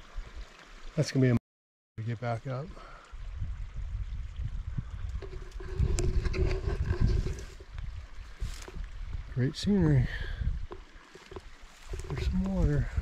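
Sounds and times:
wind buffeting microphone: 3.2s - 13.0s
rustles and knocks in brush: 5.2s - 7.7s.

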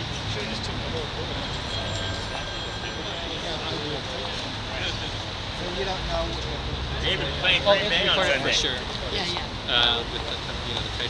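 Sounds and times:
city noise rumble: 0.0s - 11.0s
faint murmured voices: 0.0s - 11.0s.

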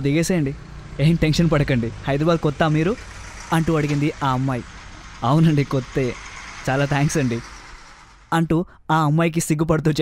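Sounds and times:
person speaking: 0.0s - 7.5s
road traffic rumble: 0.0s - 8.8s.

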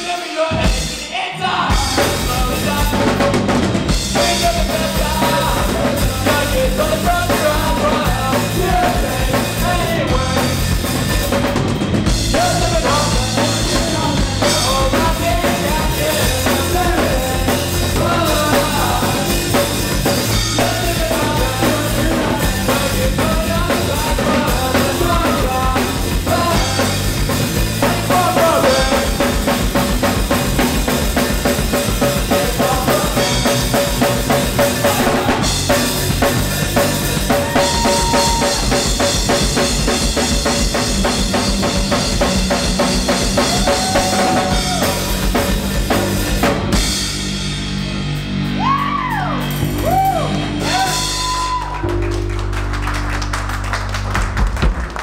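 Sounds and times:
person singing: 0.0s - 3.5s, 4.1s - 10.8s, 12.3s - 29.6s, 32.0s - 35.8s, 37.3s - 39.4s, 43.4s - 45.3s, 48.6s - 52.0s
bass guitar: 0.0s - 55.0s
drum kit: 0.0s - 55.0s
electric guitars: 1.6s - 55.0s.

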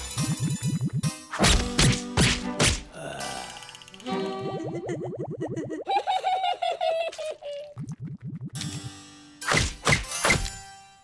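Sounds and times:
flyswatter whacks: 1.3s - 2.8s, 9.5s - 10.5s
cartoon music: 3.8s - 7.0s.

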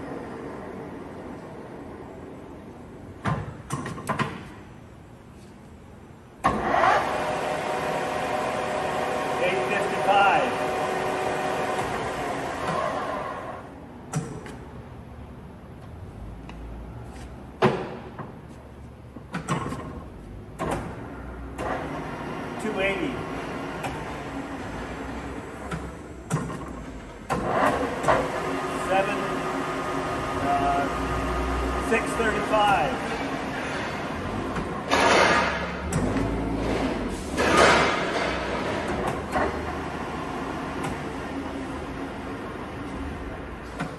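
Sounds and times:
lathe running with whine: 6.6s - 13.6s.

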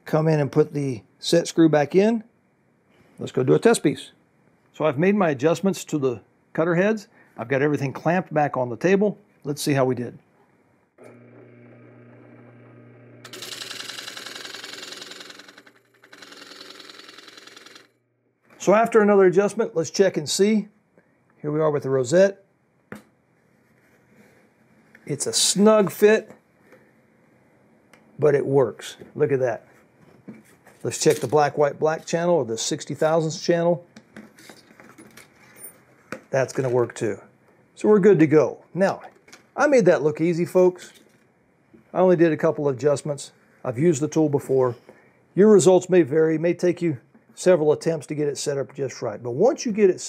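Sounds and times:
cutter blades routing plywood: 11.0s - 14.8s
drill press motor running: 11.0s - 18.0s.

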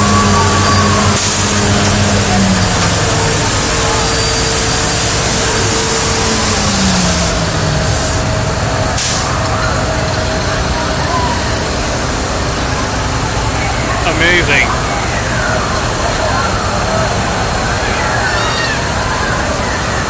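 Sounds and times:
crowd voices: 0.0s - 20.0s
truck passing close: 0.0s - 20.0s
vehicles going by: 0.0s - 20.0s.

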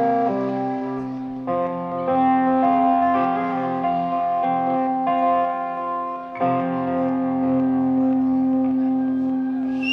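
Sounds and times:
electric guitar chord ringing: 0.0s - 8.1s.

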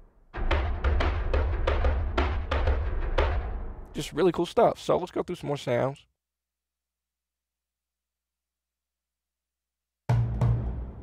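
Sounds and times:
sharp drum hits: 0.4s - 3.8s, 10.1s - 11.0s.

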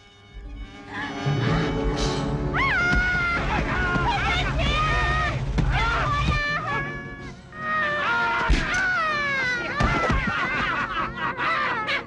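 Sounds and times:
low music bed: 0.0s - 9.7s.

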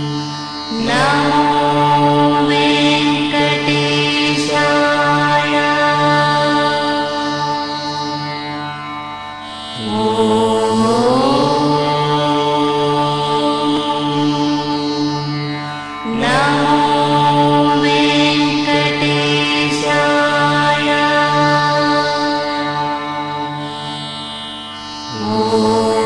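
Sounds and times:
devotional chanting: 0.0s - 26.0s
steady drone: 0.0s - 26.0s.

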